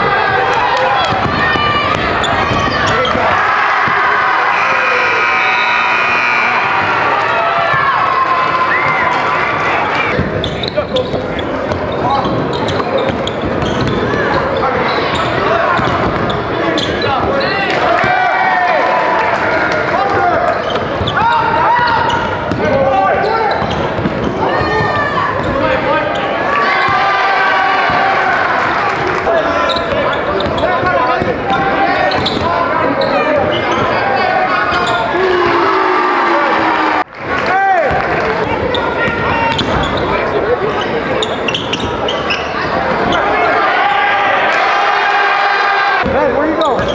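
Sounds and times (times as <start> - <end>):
crowd and player voices: 0.0 - 46.9.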